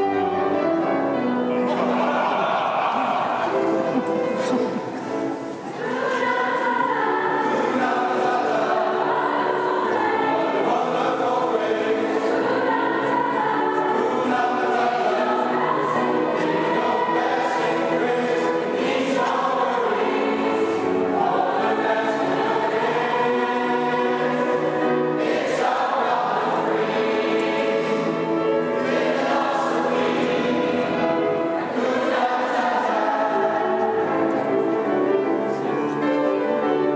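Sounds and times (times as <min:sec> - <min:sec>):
mixed choir singing in a church: 0:00.0 - 0:36.9.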